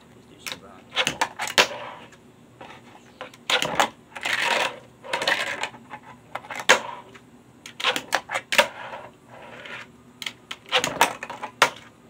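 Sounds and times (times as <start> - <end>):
fingerboard wheels rolling on ramp: 1.0 - 9.9, 10.5 - 11.9.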